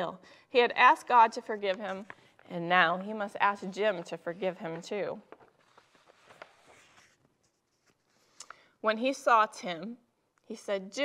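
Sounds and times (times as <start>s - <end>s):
paper sheets rustling: 3.7s - 8.4s.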